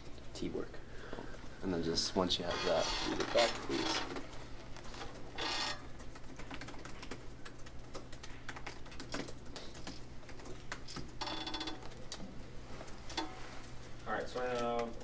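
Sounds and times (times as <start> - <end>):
laptop keyboard typing: 2.4 - 15.0.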